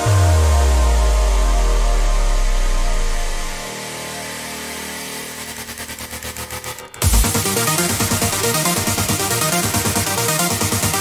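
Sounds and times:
deep bass note: 0.0s - 3.7s
fast pulsing synth build: 0.0s - 3.7s
synth pad: 0.0s - 10.4s.

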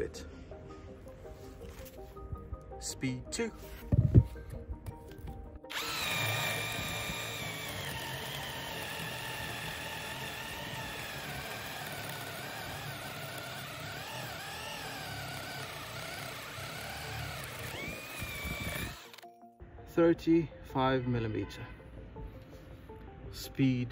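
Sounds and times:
cordless drill boring into wood: 5.7s - 19.2s.

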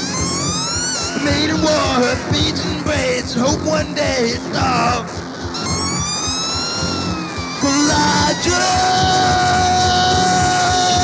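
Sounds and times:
punk rock band playing: 0.0s - 11.0s
person singing: 1.1s - 5.2s, 7.6s - 11.0s.

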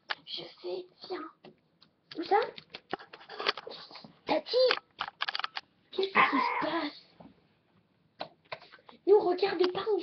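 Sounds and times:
plastic toys clicking and tapping: 1.5s - 3.7s, 4.5s - 5.7s.

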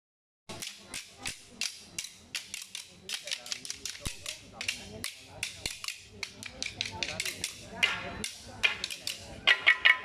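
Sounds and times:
wooden sticks clacking: 0.5s - 10.0s.

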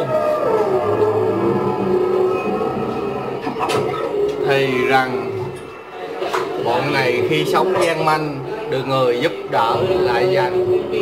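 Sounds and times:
wavering wailing voice: 0.0s - 6.0s.

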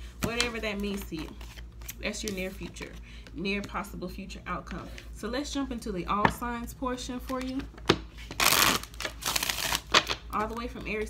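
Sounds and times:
cards being shuffled: 0.2s - 3.0s.

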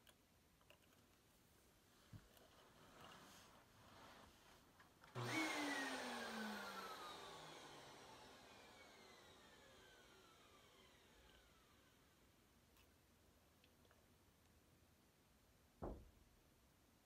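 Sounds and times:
whirring whine sliding down: 5.1s - 12.2s.

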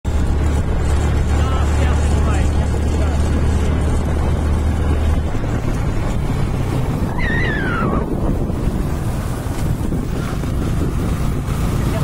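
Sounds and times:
motorcycle engine and road noise: 0.0s - 12.0s
wind rumbling on microphone: 0.1s - 12.0s.

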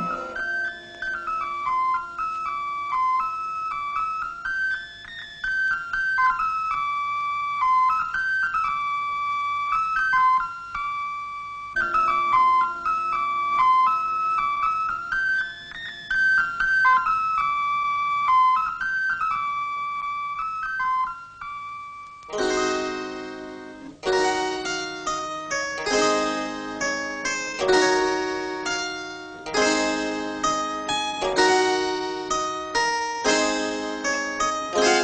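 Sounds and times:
solo pipe melody: 0.0s - 4.3s, 22.3s - 35.0s.

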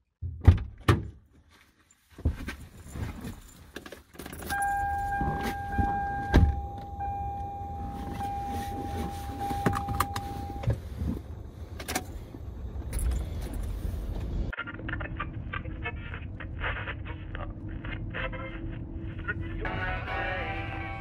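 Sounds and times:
car keys jangling: 2.5s - 10.6s, 12.8s - 13.8s
high electronic warning tone: 4.5s - 10.7s.

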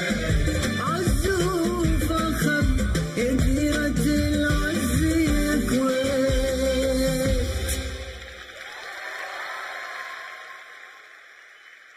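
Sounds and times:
audience applause: 7.7s - 11.9s.

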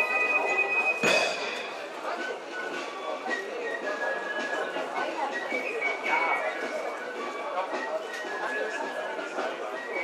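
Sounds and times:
background murmur: 0.0s - 10.0s
sharp drum stroke: 1.0s - 1.9s.

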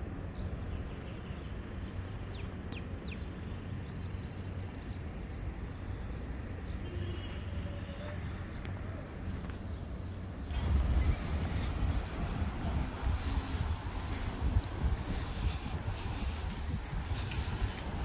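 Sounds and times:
distant traffic rumble: 0.0s - 18.0s
wind buffeting microphone: 10.5s - 18.0s.

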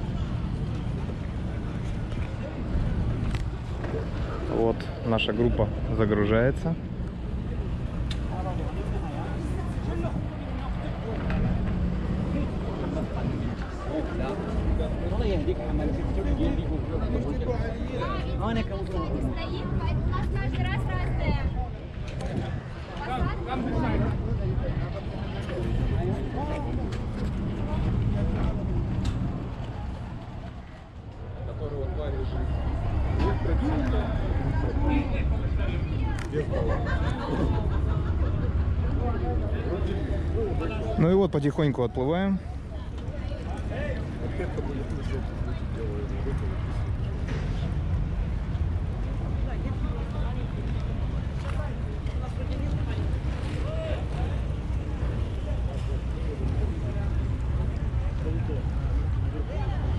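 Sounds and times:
people chattering: 0.0s - 59.9s.

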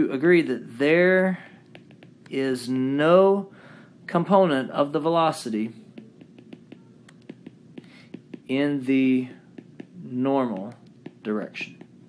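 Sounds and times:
stylus tapping on glass screen: 1.7s - 2.3s, 5.9s - 8.6s, 9.6s - 12.0s.

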